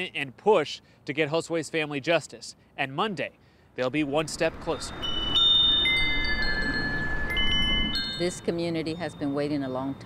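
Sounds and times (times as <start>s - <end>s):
metal wind chimes ringing: 4.6s - 9.8s.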